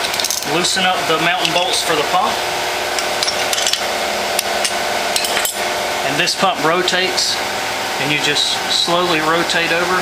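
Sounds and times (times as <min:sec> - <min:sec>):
steady background hum: 0:00.0 - 0:10.0
wrench clinking on metal: 0:04.6 - 0:05.6.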